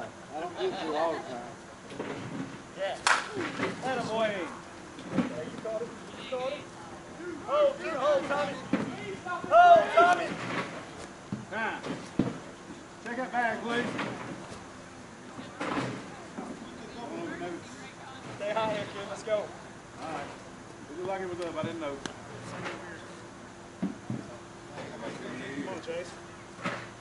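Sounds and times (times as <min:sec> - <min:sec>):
sharp crack: 0:03.0 - 0:03.8
players shouting: 0:07.1 - 0:10.6.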